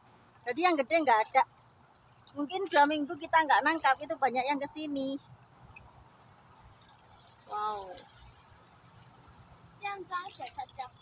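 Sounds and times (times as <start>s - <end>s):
shallow river flowing: 0.0s - 11.0s
woman speaking: 0.5s - 1.5s, 2.4s - 5.2s.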